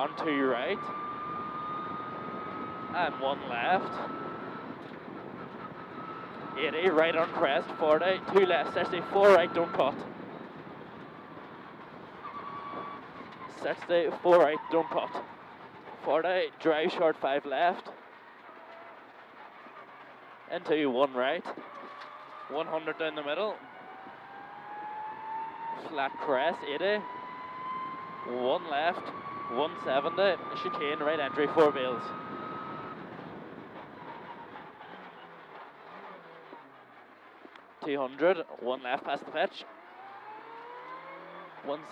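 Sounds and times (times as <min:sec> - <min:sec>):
car engine and road noise: 0:00.0 - 0:41.9.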